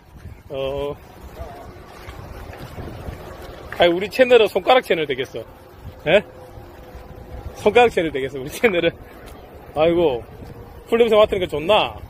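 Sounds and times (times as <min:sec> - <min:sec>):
wind blowing across microphone: 0:00.0 - 0:12.0.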